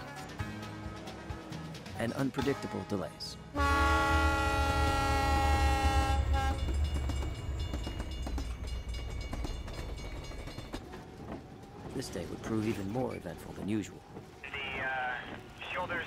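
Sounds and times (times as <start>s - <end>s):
locomotive air horn: 3.5s - 6.6s
train rolling: 3.5s - 16.0s.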